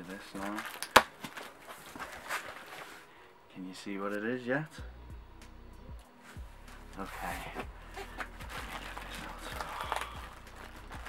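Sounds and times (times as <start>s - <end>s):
plastic bag crinkling: 0.0s - 3.1s, 8.0s - 11.0s.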